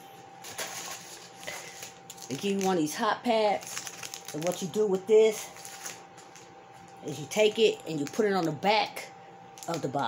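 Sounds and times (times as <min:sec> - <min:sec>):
low room hum: 0:00.0 - 0:10.0
plastic rustling: 0:00.4 - 0:08.6.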